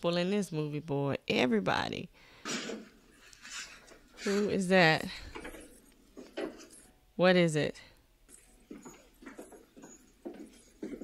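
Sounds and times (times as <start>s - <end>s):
faint film soundtrack: 8.0s - 11.0s.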